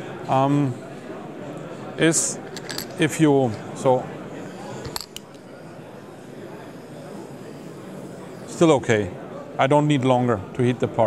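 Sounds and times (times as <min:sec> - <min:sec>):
torch flame hissing: 0:04.2 - 0:09.0.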